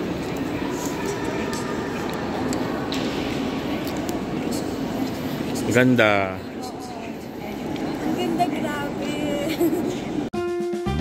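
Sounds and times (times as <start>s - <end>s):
distant voices: 0.0s - 10.3s.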